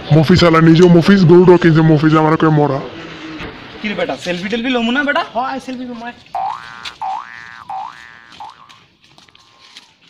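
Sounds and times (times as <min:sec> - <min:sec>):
comic boing sound effect: 0:06.4 - 0:08.7.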